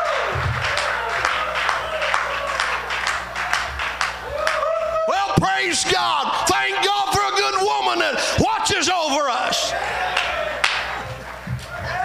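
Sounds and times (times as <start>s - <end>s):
congregation clapping: 0.0s - 4.8s, 5.4s - 8.5s, 10.0s - 11.2s.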